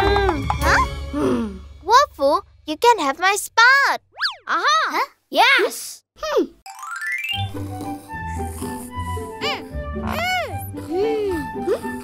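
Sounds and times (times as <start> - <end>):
cartoon swooping sound effect: 4.1 - 4.6.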